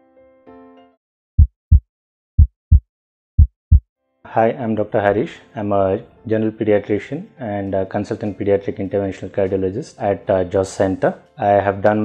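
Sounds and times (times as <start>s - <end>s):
heartbeat thuds: 1.4s - 1.8s, 2.4s - 2.8s, 3.4s - 3.8s.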